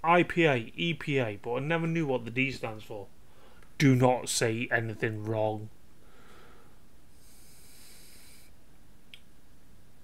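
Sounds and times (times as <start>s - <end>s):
breath out through nose: 6.1s - 8.6s
faint click: 9.1s - 9.3s.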